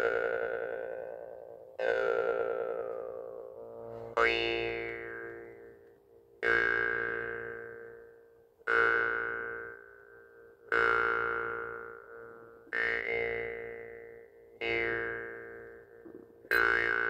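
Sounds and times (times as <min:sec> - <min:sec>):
jaw harp twanging: 0:16.1 - 0:17.0.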